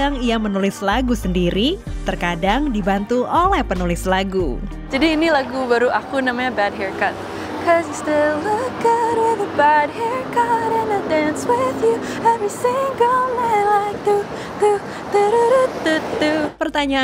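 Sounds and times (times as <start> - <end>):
woman singing pop melody: 0.0 - 6.0, 7.3 - 17.0.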